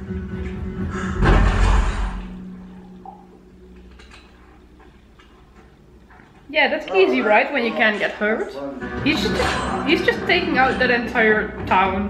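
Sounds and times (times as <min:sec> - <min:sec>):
echoing bang: 0:01.0 - 0:02.4.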